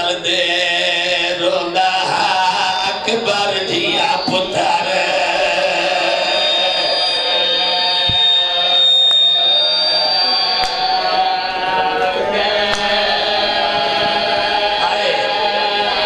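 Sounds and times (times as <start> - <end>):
voices crying out: 1.5 - 16.0
high steady whistle: 2.6 - 15.3.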